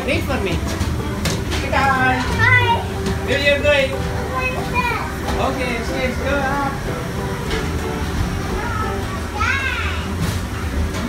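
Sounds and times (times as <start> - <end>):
children's voices playing: 1.9 - 5.6, 8.1 - 10.5
high-pitched child's call: 8.6 - 10.2.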